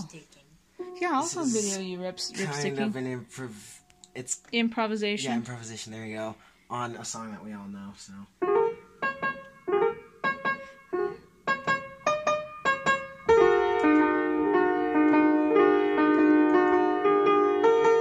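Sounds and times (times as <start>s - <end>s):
piano improvisation: 8.4s - 18.0s.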